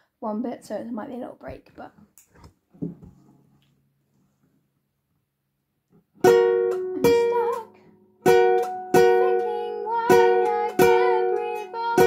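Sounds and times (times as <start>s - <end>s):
classical guitar strum: 6.2s - 12.0s.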